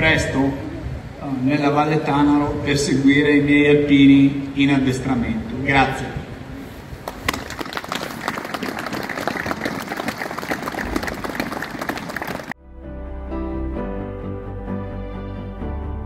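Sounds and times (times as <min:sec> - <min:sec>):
crowd applauding: 0:07.0 - 0:12.6
background music: 0:12.6 - 0:16.0.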